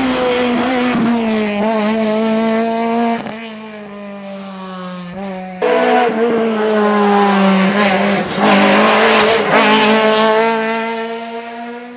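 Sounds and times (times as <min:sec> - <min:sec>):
rally car engine at high revs: 0:00.0 - 0:11.9.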